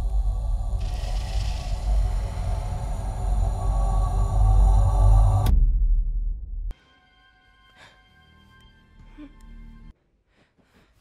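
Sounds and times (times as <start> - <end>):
hissing swell: 0.0 - 5.4
deep rumbling drone: 0.0 - 6.7.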